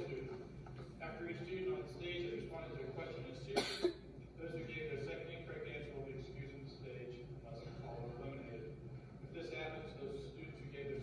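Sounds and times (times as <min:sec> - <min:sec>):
person coughing: 0:03.5 - 0:04.0.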